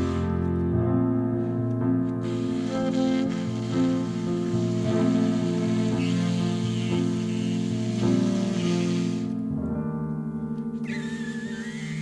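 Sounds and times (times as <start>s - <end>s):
electric keyboard chords: 0.0s - 12.0s.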